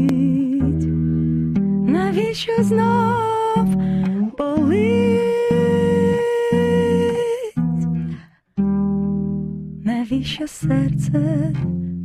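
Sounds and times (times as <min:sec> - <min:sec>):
acoustic bass plucking: 0:00.0 - 0:12.0
woman singing long note: 0:04.4 - 0:07.6.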